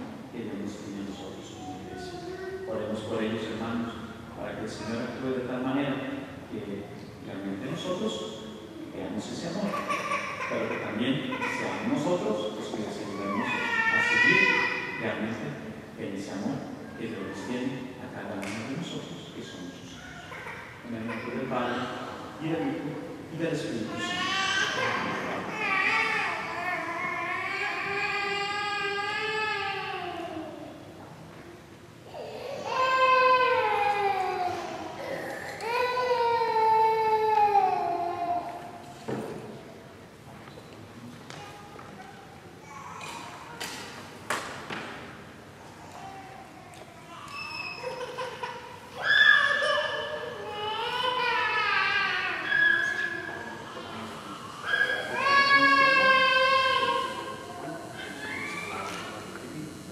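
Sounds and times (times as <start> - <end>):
child crying: 45.9 - 53.8, 54.5 - 58.8.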